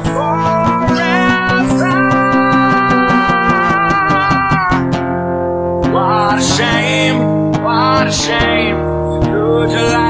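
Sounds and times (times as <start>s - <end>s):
long held notes: 0.0s - 6.0s
acoustic guitar strumming: 0.0s - 10.0s.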